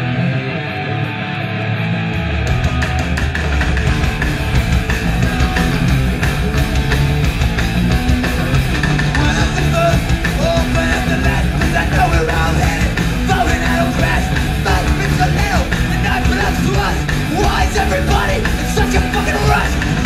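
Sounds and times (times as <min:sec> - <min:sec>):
distorted electric guitar: 0:00.0 - 0:20.0
rock band playing: 0:00.0 - 0:20.0.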